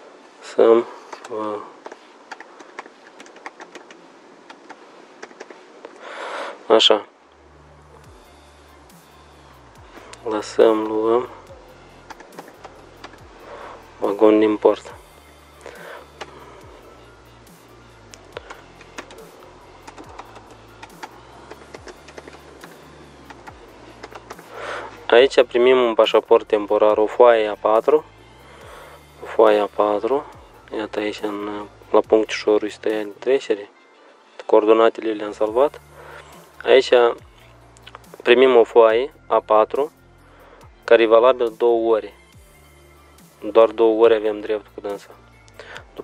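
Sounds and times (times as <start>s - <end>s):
quiet background music: 0.0s - 46.0s
computer keyboard typing: 2.3s - 5.5s.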